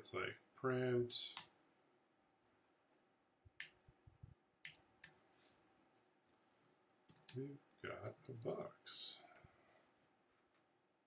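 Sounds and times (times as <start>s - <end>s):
computer keyboard keystrokes: 4.6s - 5.2s, 6.6s - 7.4s.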